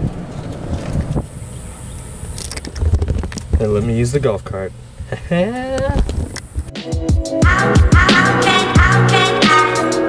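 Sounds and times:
wind buffeting microphone: 0.0 - 4.0, 5.8 - 6.7
golf cart rumbling on grass: 0.0 - 5.3.

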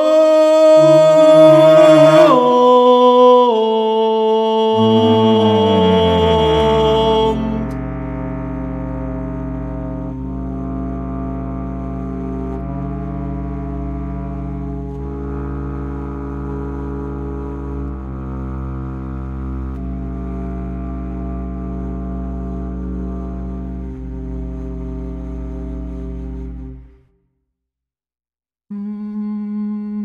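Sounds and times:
bass flute low notes: 0.0 - 3.8, 4.6 - 27.2, 28.7 - 30.0
bass clarinet low notes: 0.0 - 27.2, 28.7 - 30.0.

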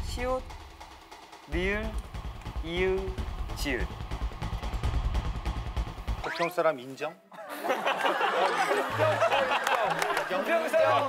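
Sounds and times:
pulsing drum and bass suspense music: 0.0 - 6.3.

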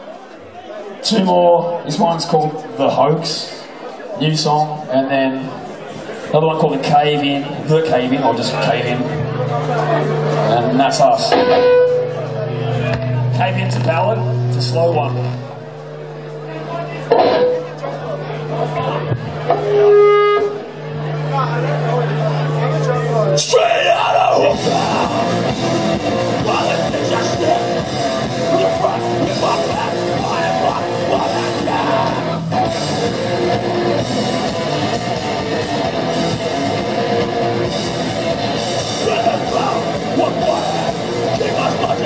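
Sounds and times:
crowd chatter: 0.0 - 42.0
low amplifier hum: 0.0 - 42.0
electric guitar: 7.5 - 42.0
amplified instrument note: 8.0 - 42.0
drum kit with cymbal hits: 9.2 - 23.3, 24.4 - 42.0
person singing: 23.6 - 32.5, 38.8 - 42.0.

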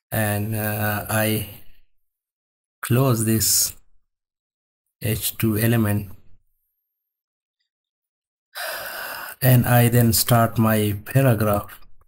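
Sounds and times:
noisy breath in: 8.6 - 9.4.

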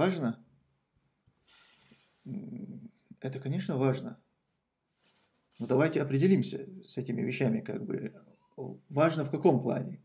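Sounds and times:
man speaking: 0.0 - 0.4, 2.2 - 4.3, 5.5 - 10.0
man humming: 2.3 - 2.9.

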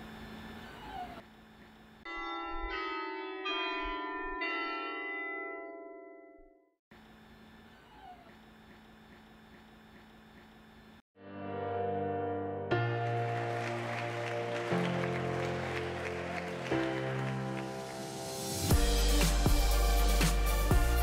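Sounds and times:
chime of bells: 2.1 - 6.5.

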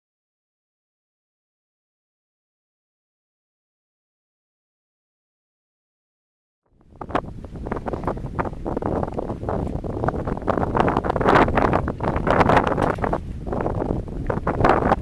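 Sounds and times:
wind gusts on microphone: 6.7 - 15.0.

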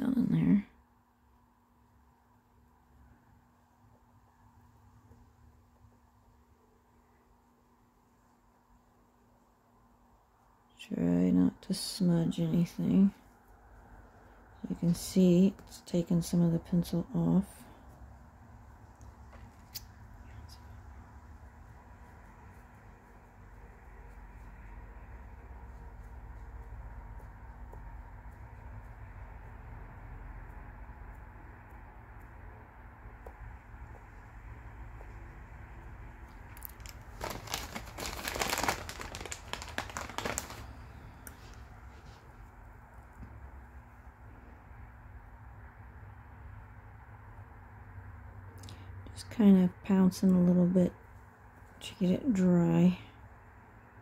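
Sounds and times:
low room hum: 0.0 - 54.0
faint handling noise: 36.2 - 43.3.

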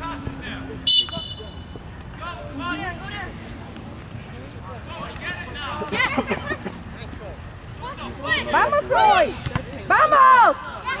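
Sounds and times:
referee's whistle blast: 0.9 - 1.6.

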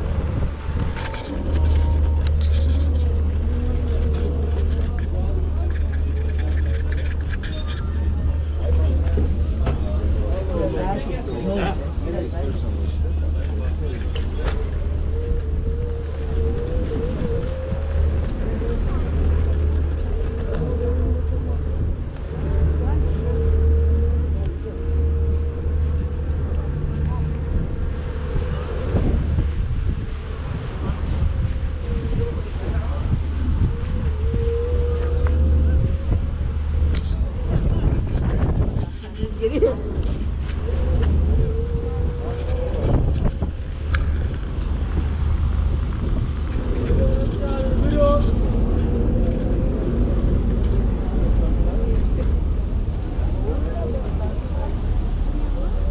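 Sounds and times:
low engine drone: 0.0 - 55.9.

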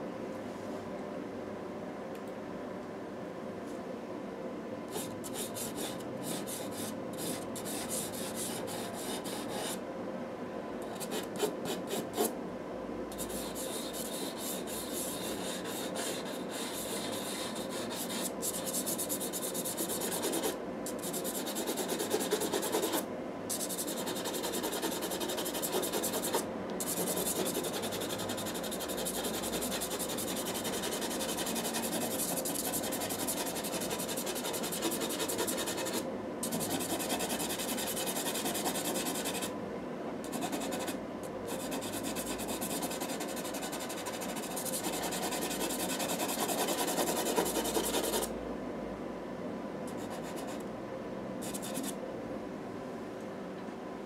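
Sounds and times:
pencil scratching on paper: 5.0 - 9.8, 13.2 - 39.5, 40.3 - 48.3, 50.0 - 50.6.

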